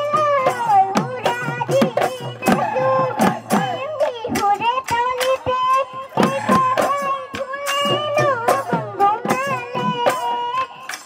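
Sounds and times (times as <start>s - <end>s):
girl singing: 0.0s - 11.0s
percussive beats: 0.0s - 11.0s.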